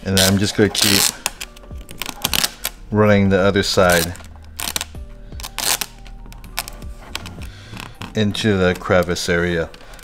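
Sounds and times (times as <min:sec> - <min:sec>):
vinyl film clicking and crackling: 0:00.0 - 0:02.9, 0:03.7 - 0:10.0.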